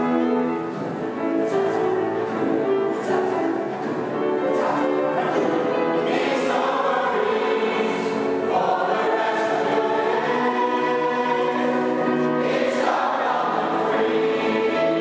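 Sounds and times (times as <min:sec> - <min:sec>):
choir singing in church: 0:00.0 - 0:15.0.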